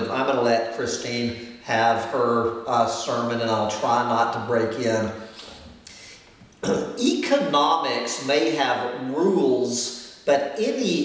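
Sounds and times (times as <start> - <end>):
man clearing throat: 6.6 - 7.0.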